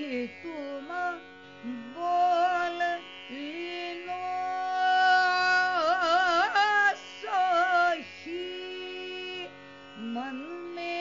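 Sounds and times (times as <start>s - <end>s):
tanpura drone: 0.0s - 11.0s
woman singing: 0.0s - 11.0s.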